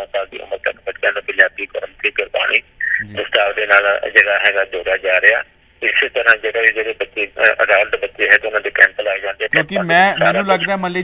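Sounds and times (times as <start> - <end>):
man talking over telephone: 0.0 - 11.0.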